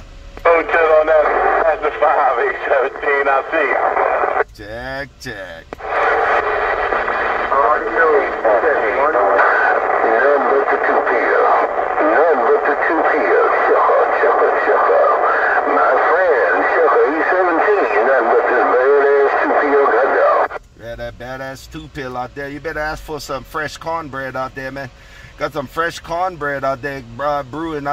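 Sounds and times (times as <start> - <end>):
jumble of radio voices talking: 0.4 - 27.9.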